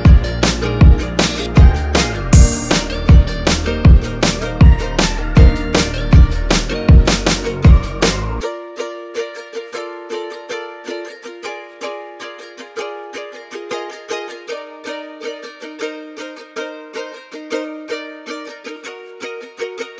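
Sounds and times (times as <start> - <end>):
solo ukulele picking: 0.0 - 19.9.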